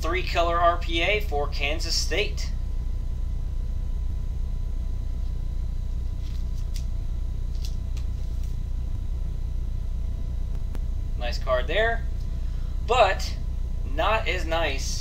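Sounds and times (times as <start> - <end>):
fan hum: 0.0 - 15.0.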